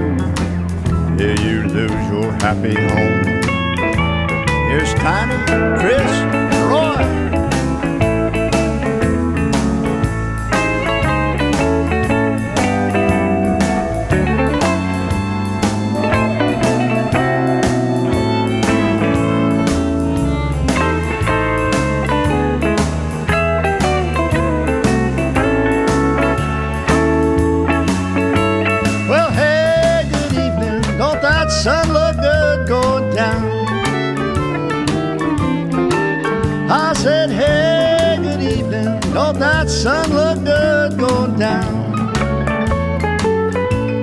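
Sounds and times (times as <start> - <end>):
country blues band playing: 0.0 - 44.0
lead guitar: 0.0 - 44.0
sliding bending guitar notes: 0.0 - 44.0.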